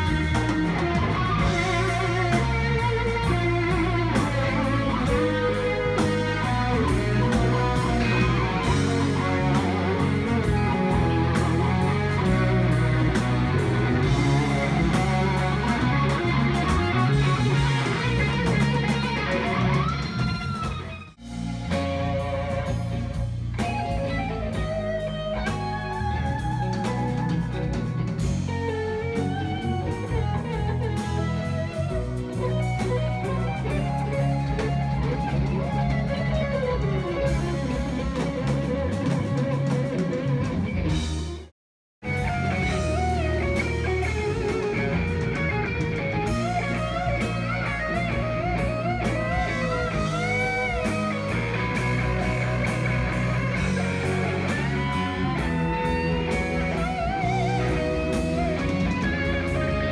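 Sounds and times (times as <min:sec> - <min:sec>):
drum kit: 0:00.0 - 0:59.9
electric guitars playing: 0:00.0 - 0:59.9.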